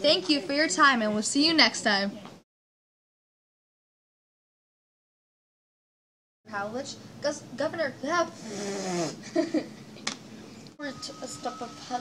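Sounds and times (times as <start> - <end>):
children laughing: 9.2 - 9.9.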